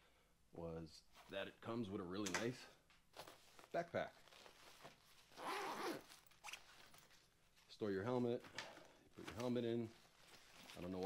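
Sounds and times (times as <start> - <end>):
backpack zipper opening: 5.3 - 6.8.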